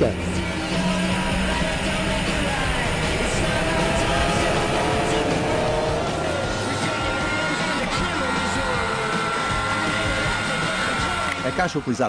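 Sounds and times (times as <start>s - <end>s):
background music: 0.0s - 12.0s
race car engine under load: 0.0s - 12.0s.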